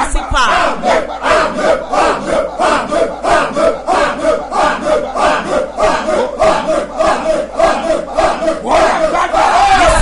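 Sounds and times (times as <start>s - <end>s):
man praying loudly: 0.0s - 10.0s.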